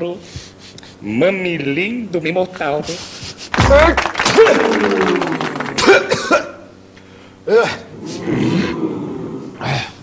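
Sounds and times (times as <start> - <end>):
man coughing: 5.7 - 6.7.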